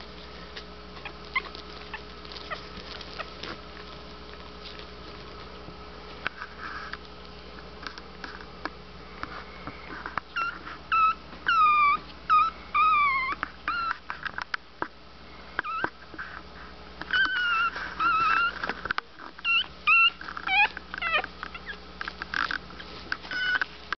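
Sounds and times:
puppies whimpering: 0.0 - 5.5, 10.3 - 14.0, 15.6 - 16.0, 17.1 - 18.7, 19.4 - 21.8, 22.8 - 23.8.

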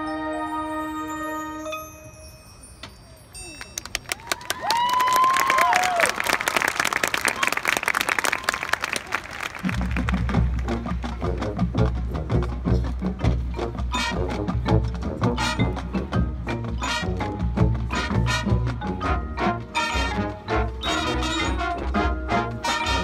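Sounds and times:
people whooping: 3.4 - 6.5, 7.3 - 9.4
marching band with low brass: 9.6 - 23.0
rapid percussion hits: 9.7 - 23.0.

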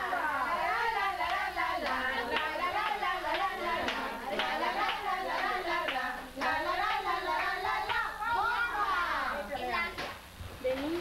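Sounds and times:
voices singing: 0.0 - 10.0
hand claps: 1.2 - 6.6.

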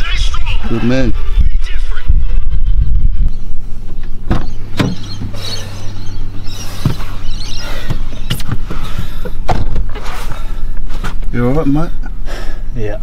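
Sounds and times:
wind rumbling on microphone: 0.0 - 11.6
low hum inside car: 0.0 - 13.0
sharp knocks and clicks: 4.3 - 5.3.

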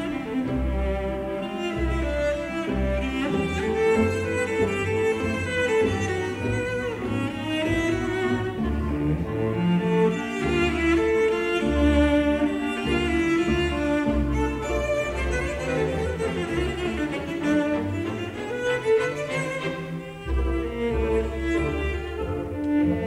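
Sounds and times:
pizzicato lower strings: 0.0 - 23.0
solo cello melody: 0.0 - 23.0.

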